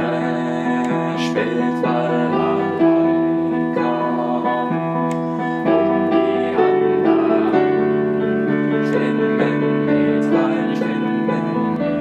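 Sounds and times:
solo piano playing chords: 0.0 - 12.0.

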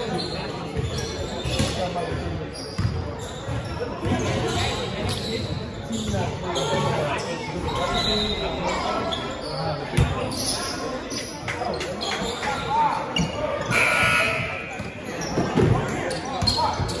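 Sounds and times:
players' voices echoing: 0.1 - 17.0.

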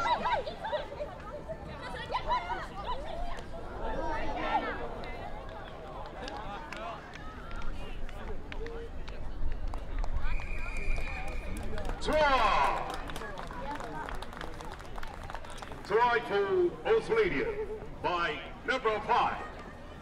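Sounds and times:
spectators chattering and calling: 0.0 - 20.0.

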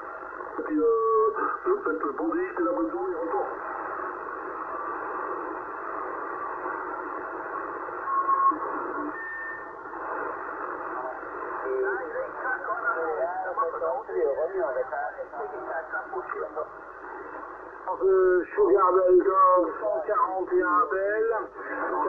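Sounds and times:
radio static: 0.0 - 22.0
garbled radio voices: 0.5 - 3.8
radio whistles: 7.9 - 9.8.

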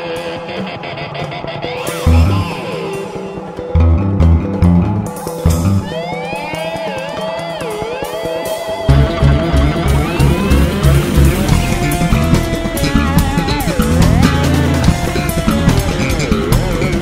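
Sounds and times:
electric bass tapping: 8.9 - 17.0.

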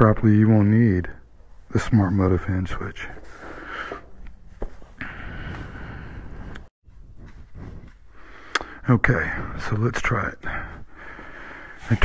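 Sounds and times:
footsteps and shuffling: 1.4 - 8.5.

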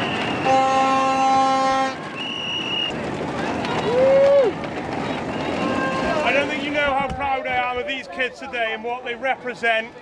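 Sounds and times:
horn blast: 0.0 - 2.3
crowd noise: 0.0 - 10.0.

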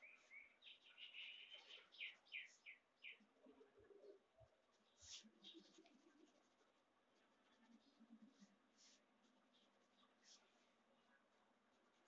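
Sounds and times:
pencil scratching on paper: 4.7 - 12.0.

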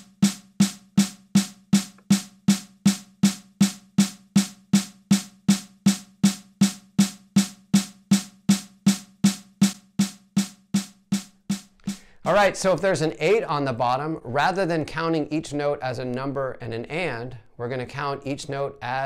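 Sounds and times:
snare drum beats: 0.0 - 12.1.

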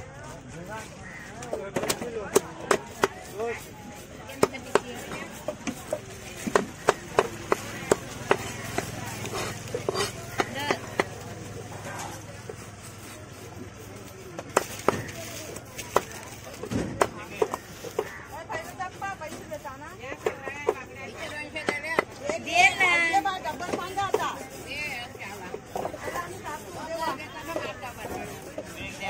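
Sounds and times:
knife chopping fish on stone: 1.4 - 11.4, 14.2 - 29.0.

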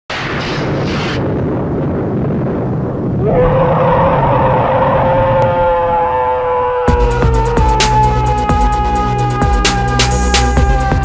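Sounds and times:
low rumbling noise: 0.1 - 11.0.

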